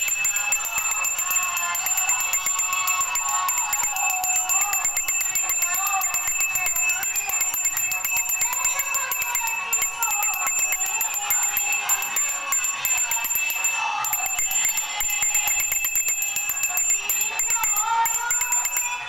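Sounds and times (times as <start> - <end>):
hand bell rung rapidly: 0.0 - 19.0
high-pitched devotional singing: 0.0 - 19.0.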